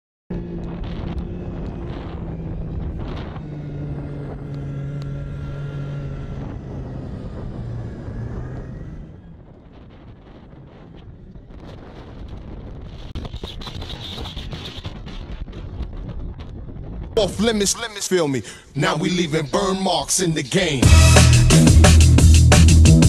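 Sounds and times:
snowmobile engine running: 0.3 - 15.5
wind buffeting microphone: 0.3 - 17.7.

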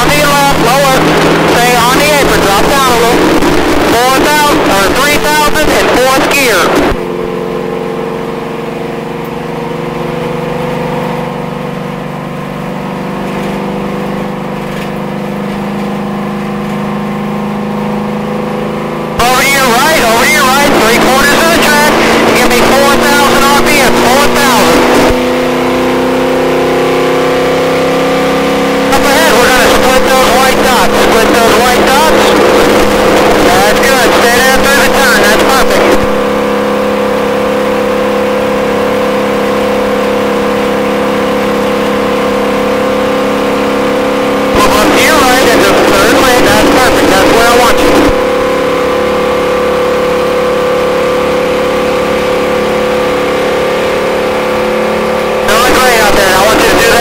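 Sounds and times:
race car engine under load: 0.0 - 57.0.

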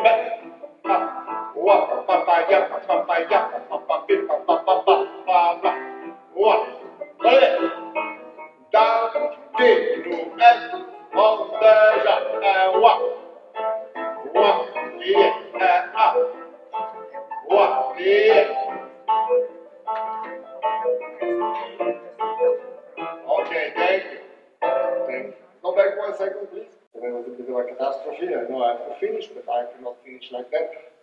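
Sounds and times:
man singing nonsense syllables: 0.0 - 8.0, 8.7 - 13.4, 14.1 - 16.5, 17.4 - 18.9, 23.2 - 24.4.

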